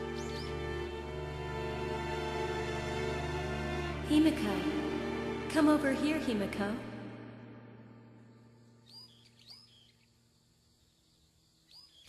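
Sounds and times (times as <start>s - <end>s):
faint bird chirps: 0.0s - 0.6s, 8.2s - 12.0s
low music: 0.0s - 8.8s.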